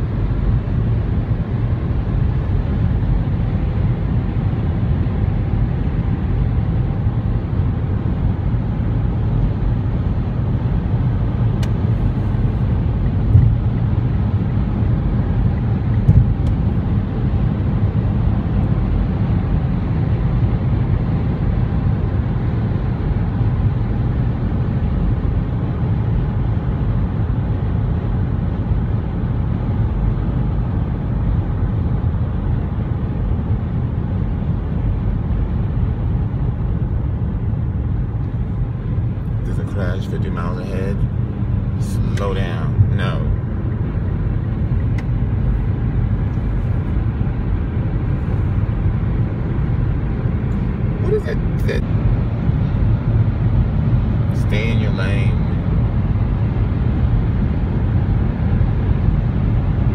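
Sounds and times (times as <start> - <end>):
car road and engine rumble: 0.0 - 59.9.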